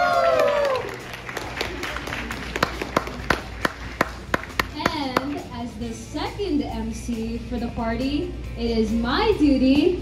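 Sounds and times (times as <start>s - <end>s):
small audience applause: 0.0s - 4.7s.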